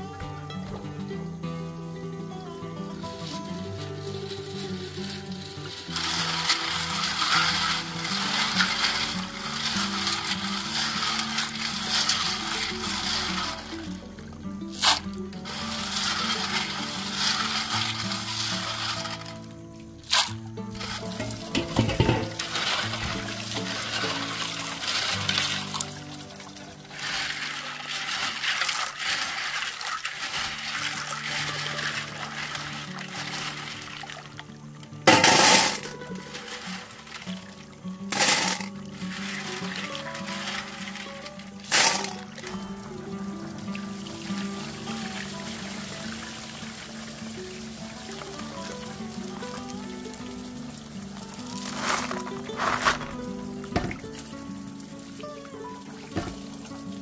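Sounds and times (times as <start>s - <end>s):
background music: 0.0s - 57.0s
water sloshing and splashing: 2.8s - 57.0s.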